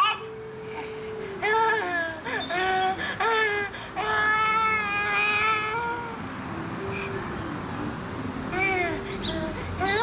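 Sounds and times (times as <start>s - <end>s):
recorded baby crying: 0.0s - 6.3s, 8.4s - 10.0s.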